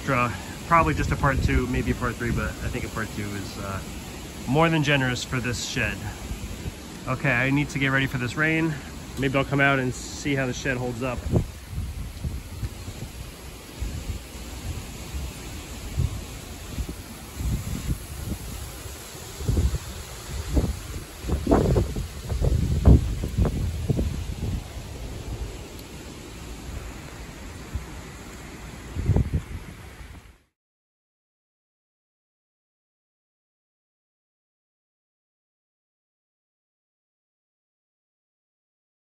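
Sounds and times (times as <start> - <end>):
wind buffeting microphone: 0.0 - 30.3.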